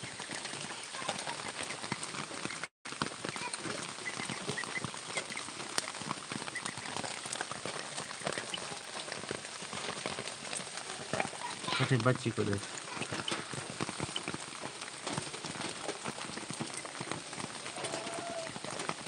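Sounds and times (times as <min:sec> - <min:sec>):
rain pattering: 0:00.0 - 0:19.0.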